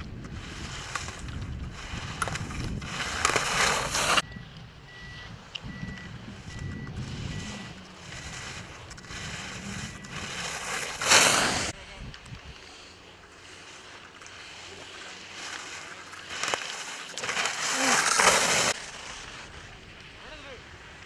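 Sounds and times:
wind rumble on microphone: 0.0s - 3.4s, 4.2s - 10.4s, 11.7s - 12.7s
skis scraping on snow: 0.0s - 4.2s, 6.4s - 11.8s, 12.5s - 21.0s.

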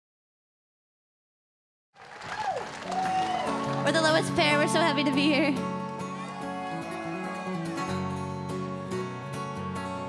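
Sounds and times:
acoustic guitar strumming: 3.4s - 10.0s.

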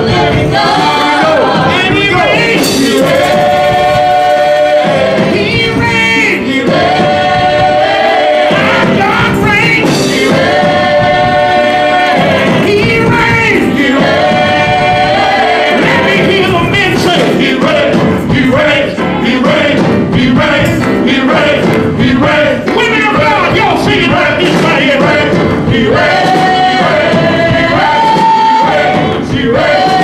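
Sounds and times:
gospel choir singing: 0.0s - 30.0s.

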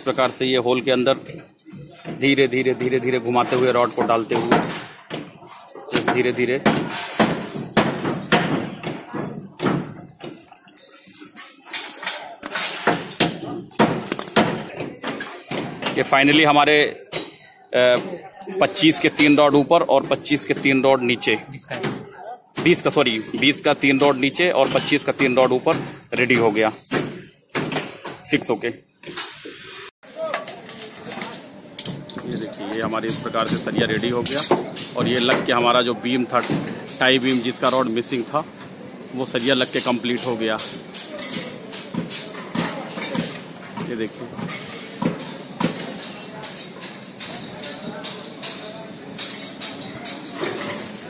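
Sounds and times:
knocks and thuds on rebar: 6.0s - 10.4s.

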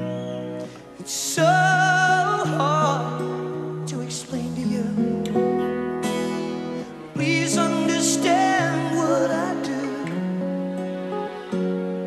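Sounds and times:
guitar notes and chords: 0.0s - 12.0s.

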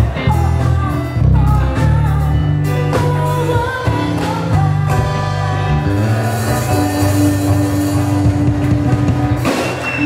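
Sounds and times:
woman singing: 0.0s - 5.7s
live reggae band playing: 0.0s - 10.0s.

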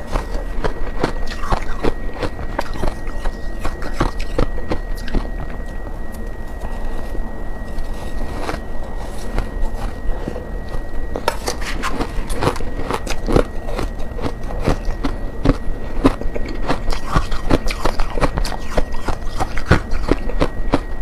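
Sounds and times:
frost being chewed crunching: 0.0s - 21.0s.

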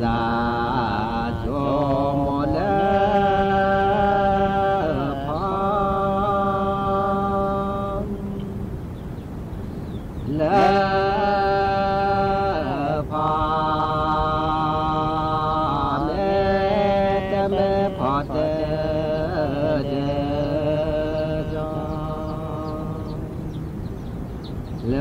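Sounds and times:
voice chanting long notes: 0.0s - 8.8s, 10.3s - 23.7s.

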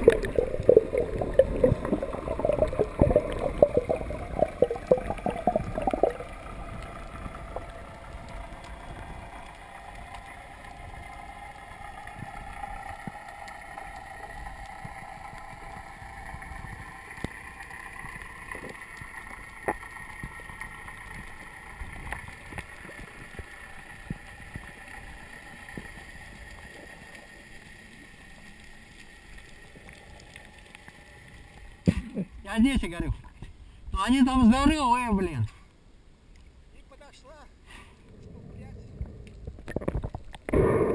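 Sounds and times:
water splashing and bubbling: 0.0s - 32.4s, 38.0s - 40.9s
faint underwater hum: 0.0s - 40.9s.

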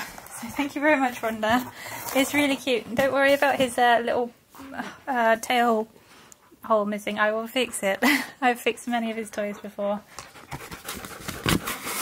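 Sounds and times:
dog panting: 9.2s - 12.0s.

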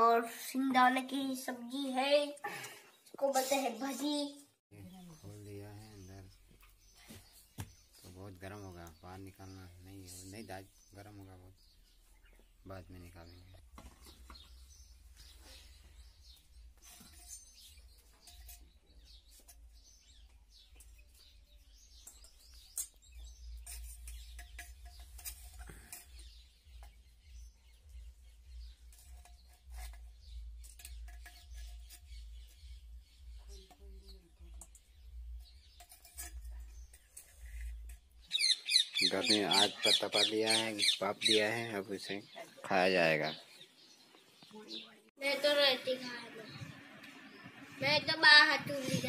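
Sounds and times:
birds chirping: 0.0s - 49.0s
clinks and knocks in colander: 22.0s - 27.0s.

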